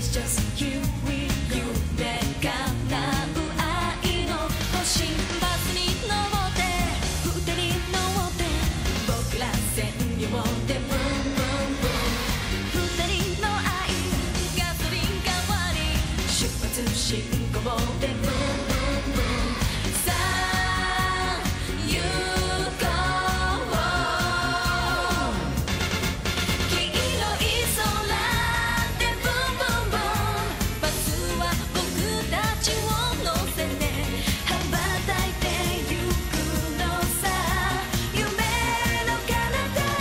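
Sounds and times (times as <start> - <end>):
female voices singing: 0.0 - 25.6, 26.7 - 40.0
upbeat pop backing track: 0.0 - 40.0.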